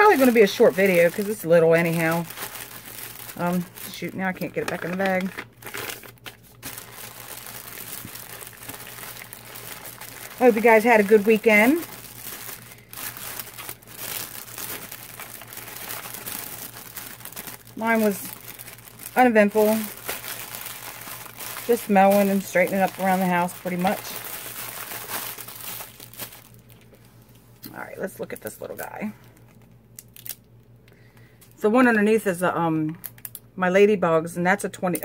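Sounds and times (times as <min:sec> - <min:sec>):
plastic bag crinkling: 0:00.0 - 0:30.7.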